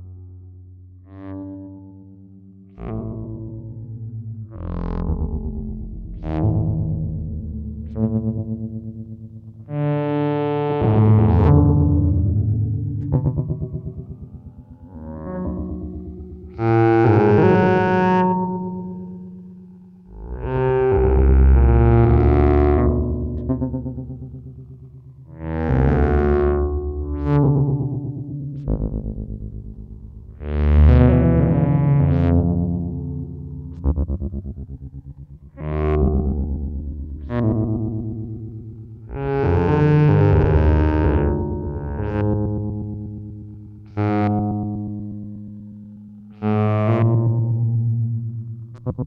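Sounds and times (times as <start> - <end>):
buzzy synthesizer notes with echoes: 0.0 - 49.0.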